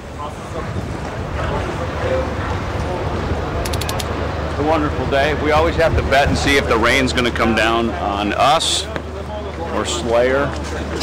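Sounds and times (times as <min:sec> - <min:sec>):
low outdoor rumble: 0:00.0 - 0:11.0
faint high clicks: 0:03.6 - 0:04.1.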